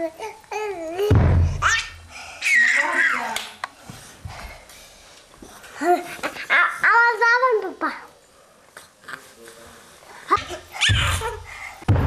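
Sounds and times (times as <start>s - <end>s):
baby squealing: 10.8s - 11.4s.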